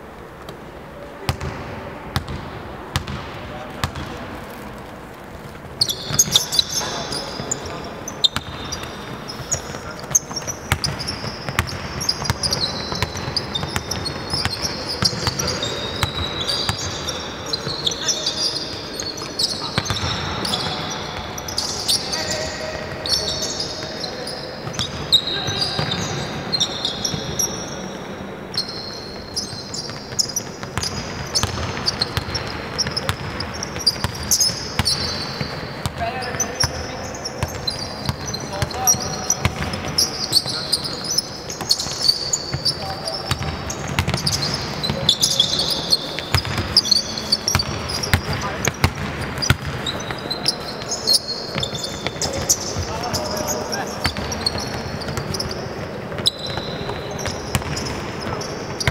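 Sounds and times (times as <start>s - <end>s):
basketball dribbling: 2.2s - 4.2s, 5.8s - 17.0s, 37.4s - 58.9s
sneaker squeaks: 2.2s - 58.9s
players calling out: 5.7s - 58.9s.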